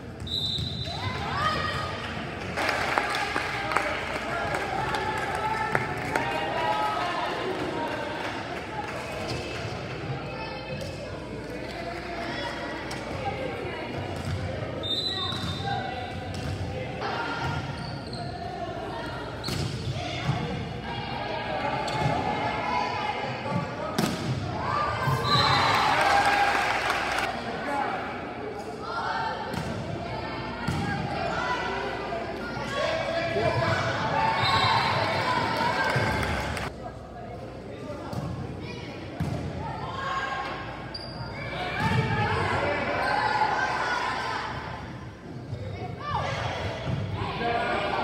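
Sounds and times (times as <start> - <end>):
spectators cheering: 25.2 - 27.3.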